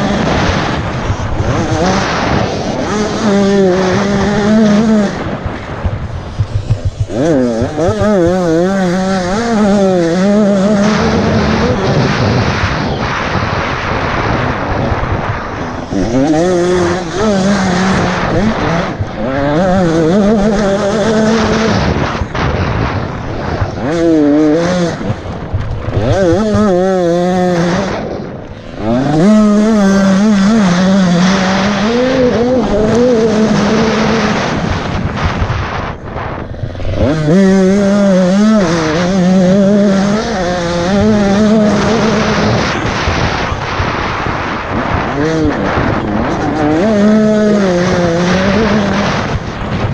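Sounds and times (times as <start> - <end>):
dirt motorcycle engine revving: 0.0 - 49.9
wind noise: 0.0 - 49.9.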